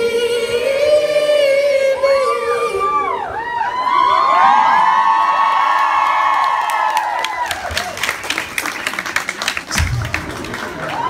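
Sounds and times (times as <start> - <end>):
audience clapping and cheering: 3.8 - 11.0.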